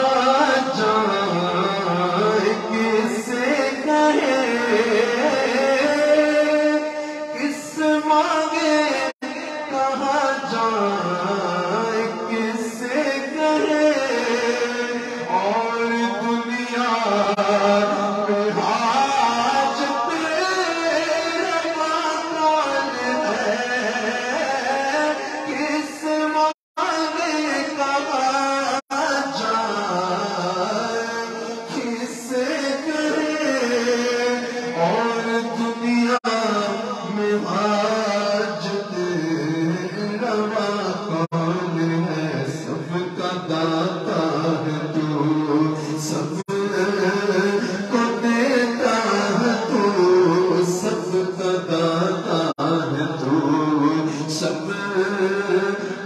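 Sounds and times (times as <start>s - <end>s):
man singing into a microphone: 0.0s - 56.0s.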